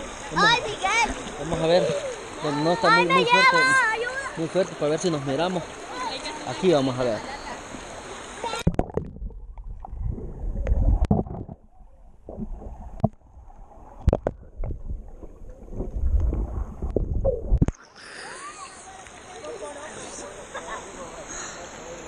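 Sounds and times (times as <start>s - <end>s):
stream hissing: 0.0s - 8.7s, 17.7s - 22.0s
underwater river rumble and gurgling: 7.2s - 17.8s
underwater clicks and knocks: 8.6s - 10.0s, 10.6s - 13.2s, 14.0s - 17.8s.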